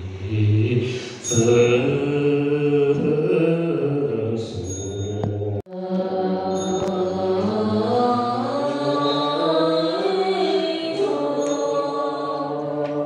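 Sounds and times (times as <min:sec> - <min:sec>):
congregation chanting in unison: 0:00.0 - 0:13.0.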